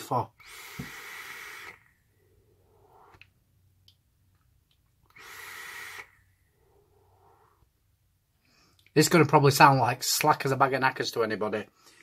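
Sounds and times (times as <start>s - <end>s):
e-cigarette draw hiss: 0.4s - 1.9s, 5.1s - 6.2s
person exhaling: 0.4s - 3.2s.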